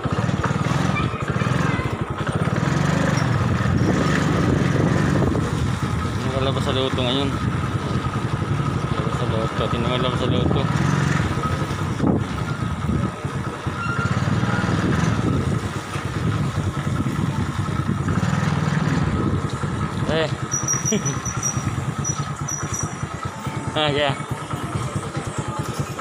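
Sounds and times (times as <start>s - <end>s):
motorcycle engine running: 0.0s - 26.0s.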